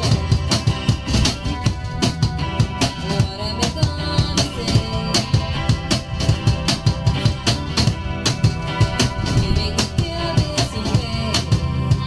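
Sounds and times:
cajon bass strokes and slaps: 0.0 - 12.0
strummed acoustic guitar chords: 0.0 - 12.0.

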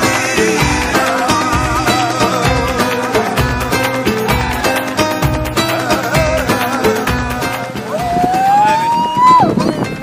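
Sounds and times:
background music: 0.0 - 10.0
murmur of voices: 0.0 - 10.0.

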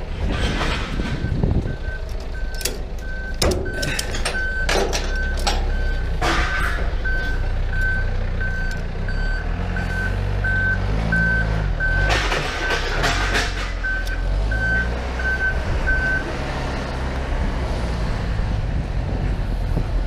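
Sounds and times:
diesel engine running: 0.0 - 20.0
reversing alarm beeping: 1.2 - 13.0, 13.8 - 16.3
metal buckle clanks: 2.0 - 7.0.

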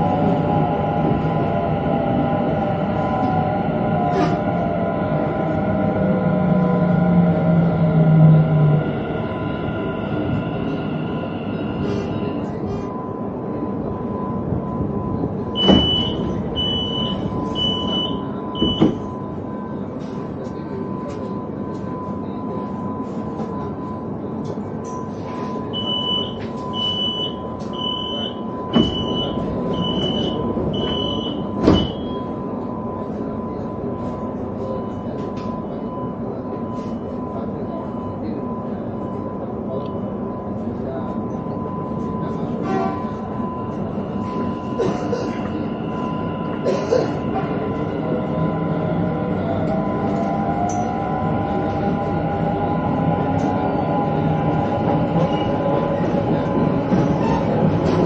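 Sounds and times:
train door warning beeps: 8.8 - 58.0.

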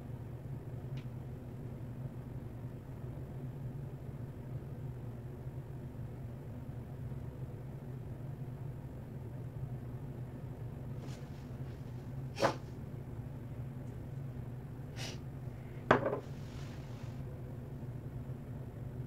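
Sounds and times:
room hum and hiss: 0.0 - 19.0.

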